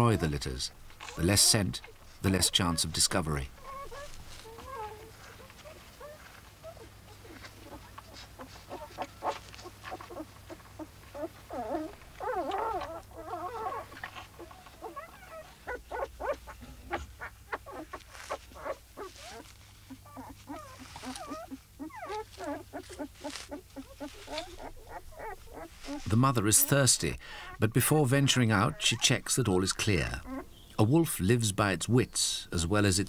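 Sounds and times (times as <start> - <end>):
pups whimpering and squeaking: 0.0 - 30.8.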